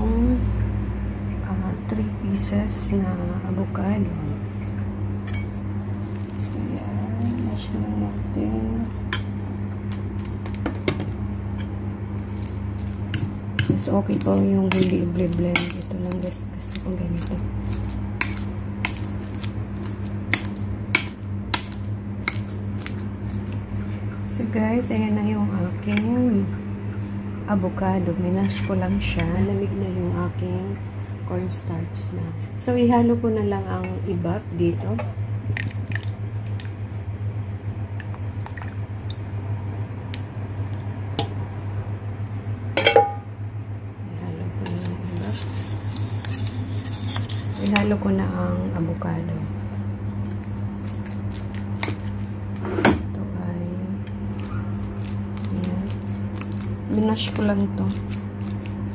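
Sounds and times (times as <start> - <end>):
steady low hum: 0.0 - 58.9
fork mashing avocado in bowl: 5.3 - 10.4, 11.6 - 24.0, 44.6 - 48.0, 50.2 - 52.3, 54.0 - 58.9
fork tines clicking on bowl: 44.7 - 47.9.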